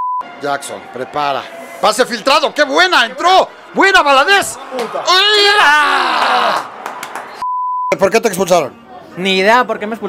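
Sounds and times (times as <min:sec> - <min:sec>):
censor bleep: 0:00.0 - 0:00.3, 0:07.4 - 0:08.0
crowd noise: 0:00.2 - 0:07.4, 0:08.0 - 0:10.0.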